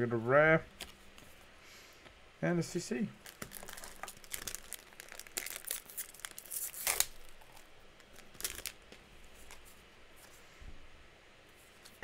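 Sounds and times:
foil wrapper tearing and crinkling: 0:03.2 - 0:09.6.

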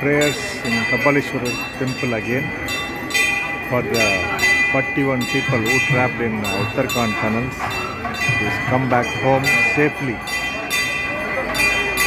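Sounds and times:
faint crowd voices: 0:00.0 - 0:12.0
temple bells ringing: 0:00.0 - 0:12.0.

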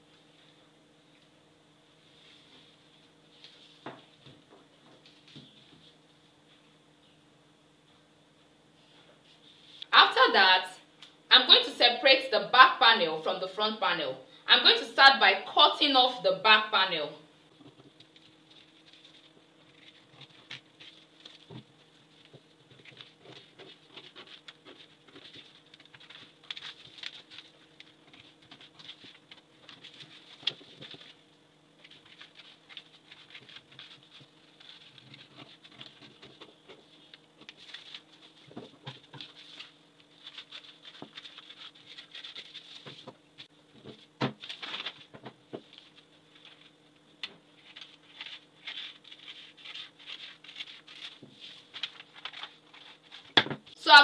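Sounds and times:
paper rustling: 0:17.6 - 0:31.2, 0:31.8 - 0:53.7.

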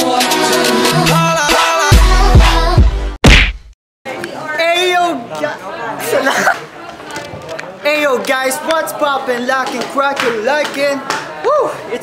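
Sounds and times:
loud hit: 0:03.2 - 0:03.7.

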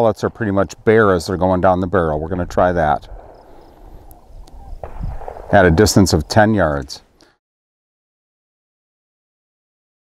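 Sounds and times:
low steady hiss: 0:00.0 - 0:07.3.

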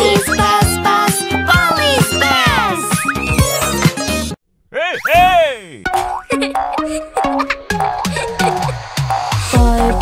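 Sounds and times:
children's music with steady beat: 0:00.0 - 0:04.3, 0:06.5 - 0:10.0
cartoon bounce sound effect: 0:04.9 - 0:08.7.

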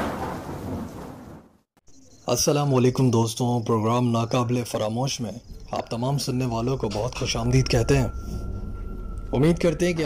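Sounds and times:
thunder clap: 0:00.0 - 0:01.7.

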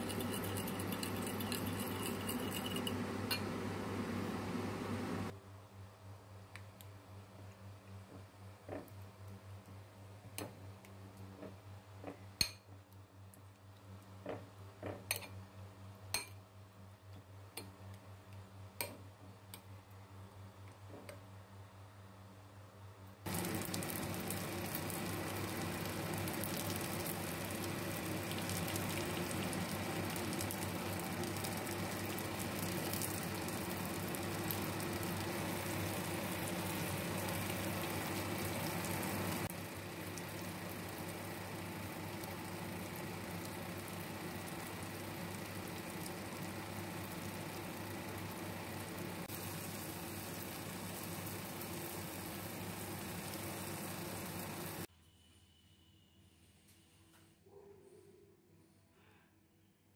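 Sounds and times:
eggplant frying in oil: 0:00.0 - 0:03.8, 0:23.2 - 0:54.9.

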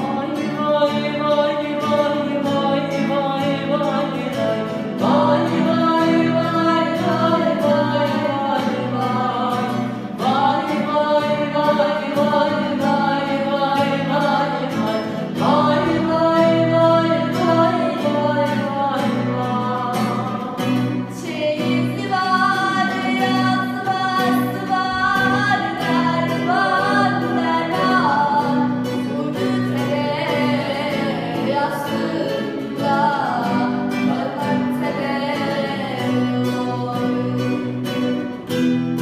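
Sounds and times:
girl singing: 0:00.0 - 0:38.4
acoustic guitar strumming: 0:00.0 - 0:39.0.

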